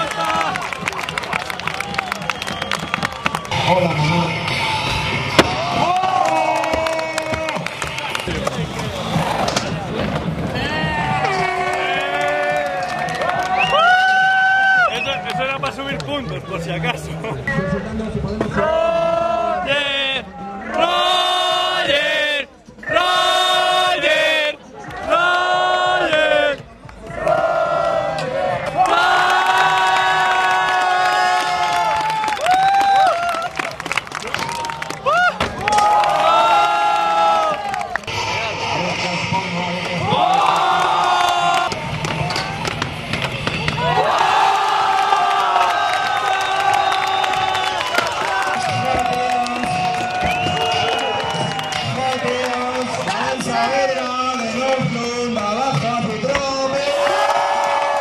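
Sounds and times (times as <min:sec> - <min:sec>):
crowd cheering: 0:00.0 - 0:17.2, 0:18.6 - 0:58.0
crowd chanting and singing: 0:16.0 - 0:30.2, 0:38.0 - 0:45.6, 0:51.4 - 0:57.4.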